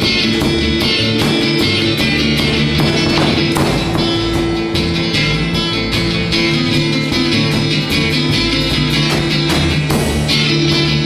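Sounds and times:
electric guitar: 0:00.0 - 0:11.0
rock band playing live: 0:00.0 - 0:11.0.

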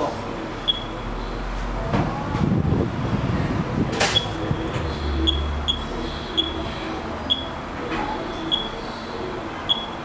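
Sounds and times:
high-pitched electronic beeps: 0:00.6 - 0:01.1, 0:04.1 - 0:07.5, 0:08.3 - 0:08.8, 0:09.7 - 0:10.0.

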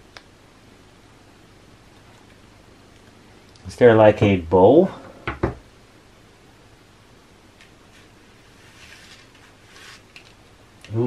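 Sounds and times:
knocks on wooden workbench: 0:05.3 - 0:05.6.

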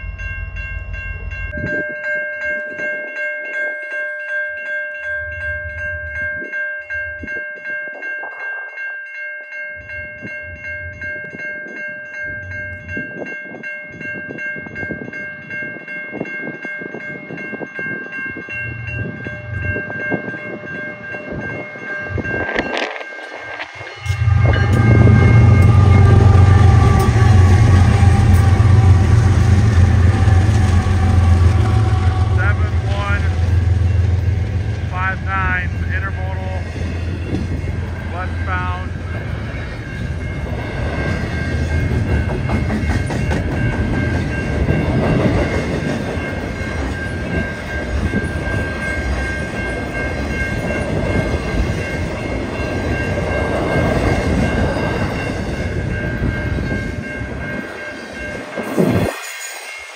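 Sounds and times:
diesel locomotive engine rumble: 0:00.0 - 0:01.9, 0:13.9 - 0:59.9
crossing warning bell ringing: 0:00.0 - 0:59.9.

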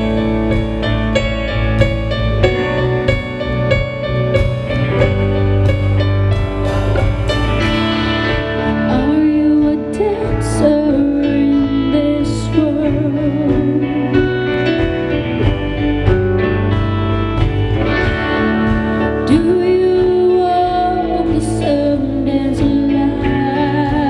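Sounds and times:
live rock band playing: 0:00.0 - 0:24.0.

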